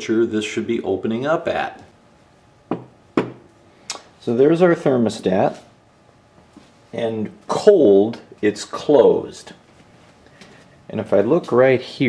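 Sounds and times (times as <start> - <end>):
light knocks on workbench: 2.7 - 3.4.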